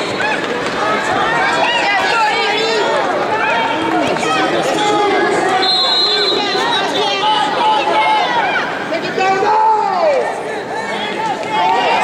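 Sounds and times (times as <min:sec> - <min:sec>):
spectators shouting: 0:00.0 - 0:12.0.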